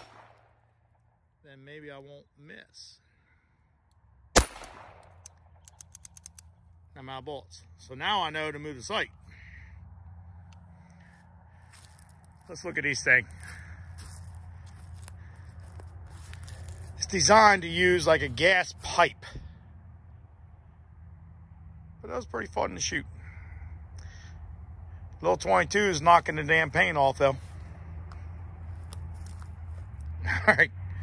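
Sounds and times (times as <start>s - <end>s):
steady low rumble: 4.1s - 31.0s
footsteps through dry leaves: 11.0s - 17.0s, 27.4s - 30.0s.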